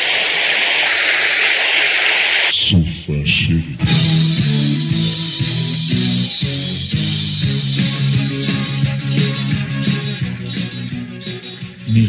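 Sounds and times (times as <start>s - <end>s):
rock music with guitar and bass: 3.8s - 12.0s.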